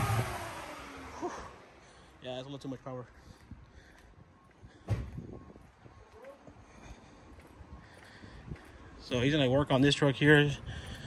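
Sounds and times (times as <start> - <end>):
footsteps on concrete: 2.8 - 9.8
sharp thump: 4.9 - 5.2.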